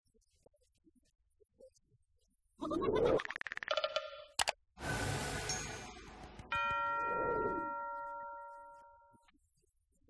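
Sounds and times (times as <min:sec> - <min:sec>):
bell-like ding: 0:05.4 - 0:09.3.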